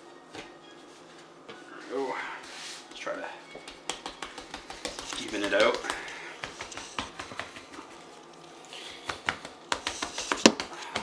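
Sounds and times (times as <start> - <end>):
hands patting dough on wooden board: 3.6 - 8.1, 9.0 - 11.0.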